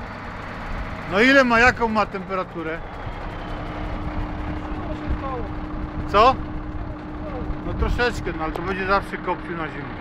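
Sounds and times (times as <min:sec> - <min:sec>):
diesel truck engine idling: 0:00.0 - 0:10.0.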